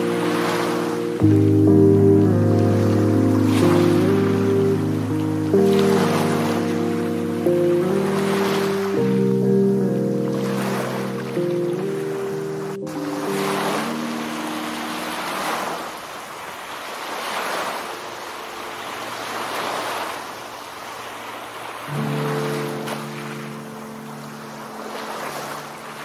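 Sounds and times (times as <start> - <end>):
lofi music: 0.0 - 16.0, 21.9 - 26.0
ocean surf washing in: 0.0 - 26.0.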